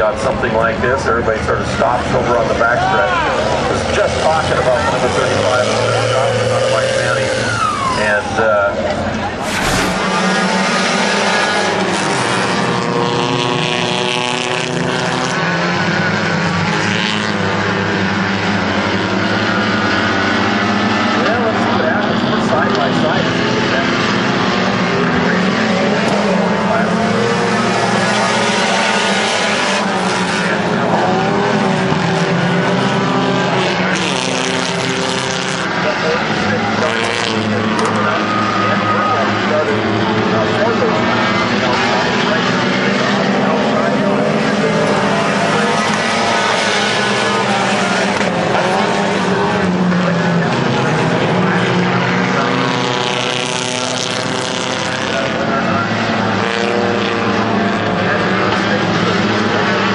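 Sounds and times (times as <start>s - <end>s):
race car engines: 0.0s - 59.9s.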